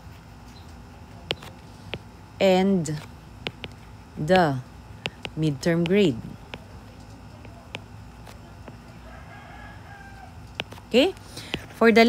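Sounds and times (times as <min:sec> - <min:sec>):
stylus tapping on screen: 0:01.3 - 0:02.1, 0:03.4 - 0:04.3, 0:05.0 - 0:06.8, 0:07.4 - 0:07.9, 0:10.5 - 0:11.8
distant rooster crowing: 0:08.7 - 0:10.8.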